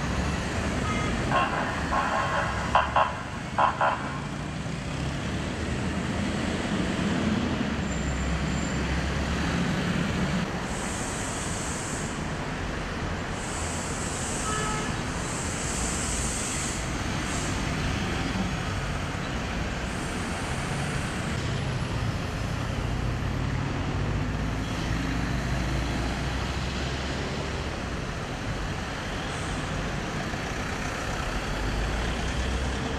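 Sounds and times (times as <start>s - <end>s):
traffic engines rumbling: 0.0s - 32.9s.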